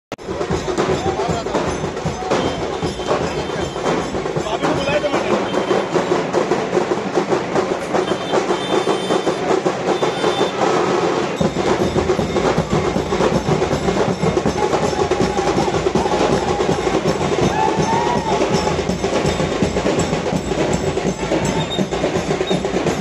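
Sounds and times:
fast loud drumming: 0.2s - 23.0s.

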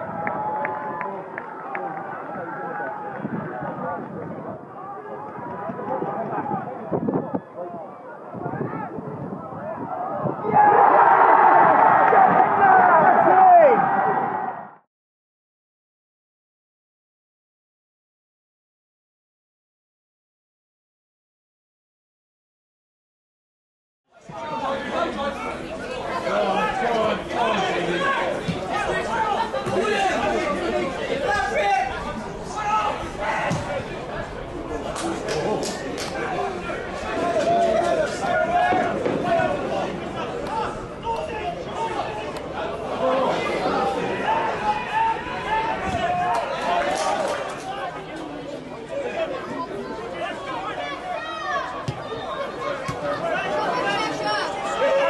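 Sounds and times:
chatter of many voices: 0.0s - 10.7s, 24.1s - 55.0s.

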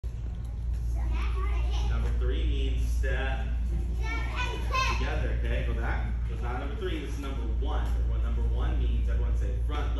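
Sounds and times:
steady low hum: 0.0s - 9.9s
children talking: 0.2s - 2.1s, 3.7s - 5.4s.

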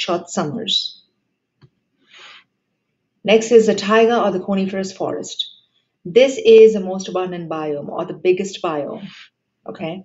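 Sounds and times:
soft breath: 2.0s - 2.6s.

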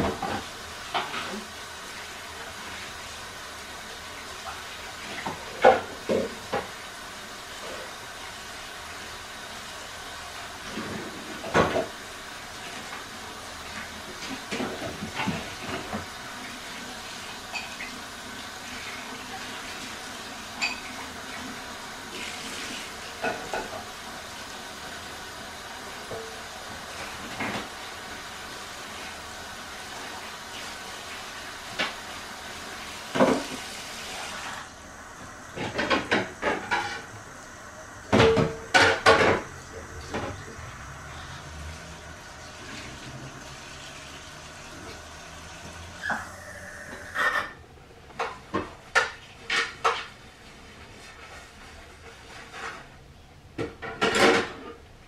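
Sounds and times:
water running in sink: 0.0s - 52.8s
dishes clinking and knocking: 20.6s - 21.0s, 23.2s - 23.9s, 38.1s - 40.4s, 53.6s - 54.8s.

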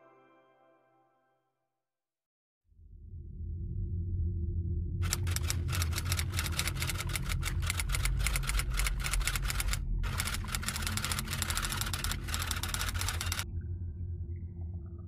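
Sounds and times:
low steady drone: 2.7s - 15.0s
rapid keyboard clicks: 5.0s - 13.4s.

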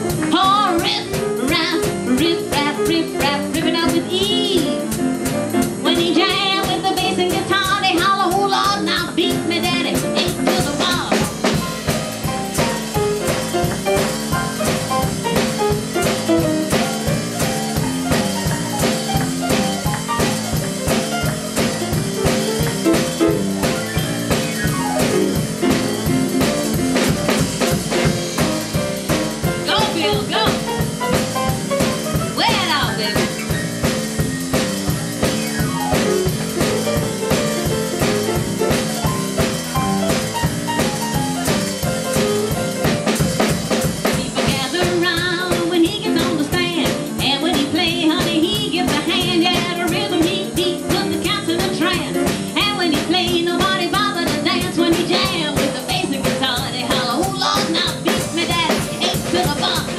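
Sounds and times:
boogie-woogie piano: 0.0s - 59.9s
drum kit: 0.0s - 59.9s
person singing: 44.1s - 59.9s.

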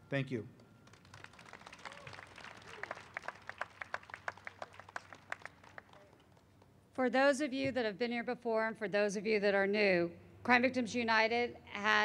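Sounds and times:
audience applauding: 0.8s - 6.4s.

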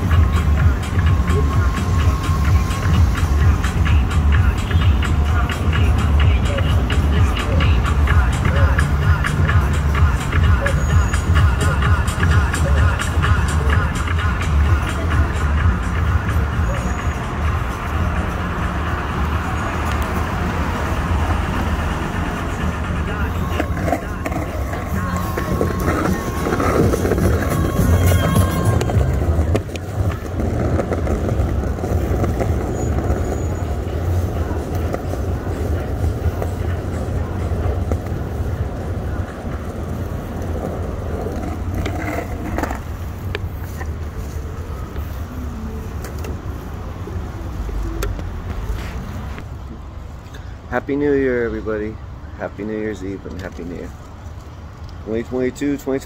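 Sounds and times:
music: 0.0s - 21.3s, 22.1s - 30.8s
voices: 0.0s - 49.5s
scooter wheels rumbling on pavement: 0.0s - 49.8s.

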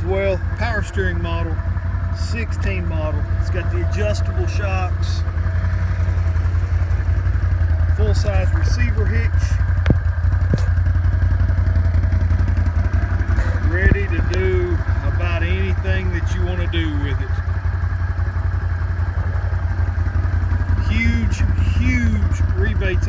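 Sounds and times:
atv engine idling: 0.0s - 23.0s.

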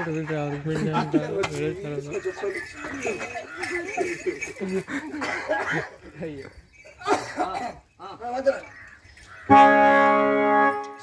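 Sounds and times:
harmonium held chord: 9.5s - 11.0s.

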